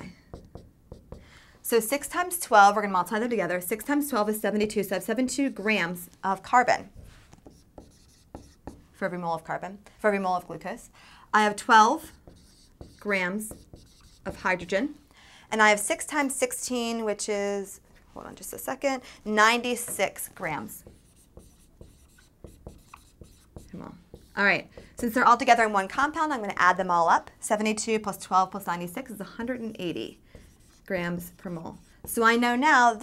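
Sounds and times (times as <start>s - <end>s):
marker writing on whiteboard: 0.0s - 1.3s, 6.8s - 8.9s, 11.6s - 14.7s, 19.7s - 25.5s, 29.4s - 32.5s
marker tip tapping: 0.3s - 1.2s, 12.2s - 14.4s, 20.8s - 25.0s.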